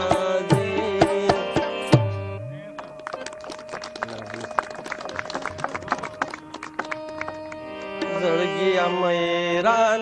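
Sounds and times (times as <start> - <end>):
tabla drumming: 0.0 - 8.4.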